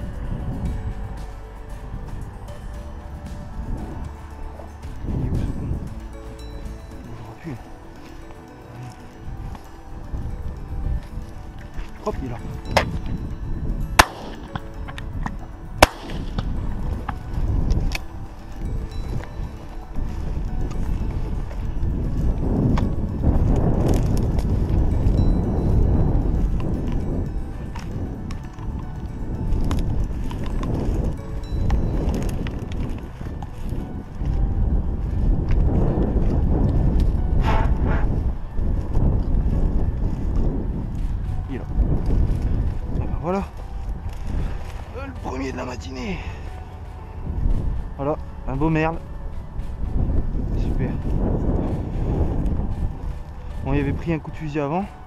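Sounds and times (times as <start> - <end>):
footsteps through dry grass: 0.0 - 55.0
wind rumble on microphone: 0.0 - 55.0
sharp cracks: 14.0 - 14.6, 15.8 - 16.4.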